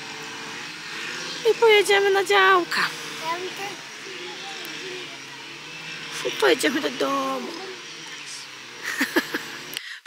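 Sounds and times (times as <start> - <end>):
faint voices: 0.6 - 8.9.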